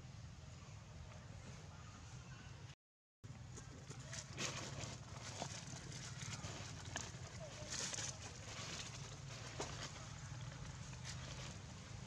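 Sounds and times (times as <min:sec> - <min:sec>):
rustles and knocks on leaves: 0:03.6 - 0:12.0.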